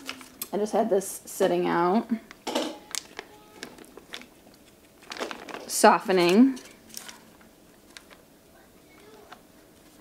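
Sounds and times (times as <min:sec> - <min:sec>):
plastic bag crinkling: 0:02.2 - 0:08.3.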